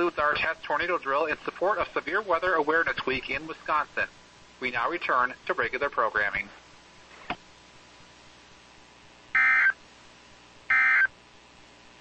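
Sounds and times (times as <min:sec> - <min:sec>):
buzzy digital data bursts: 0:09.3 - 0:09.8.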